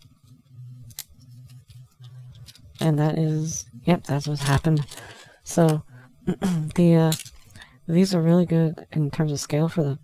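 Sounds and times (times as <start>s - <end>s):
plastic parts clicking: 7.1s - 7.6s.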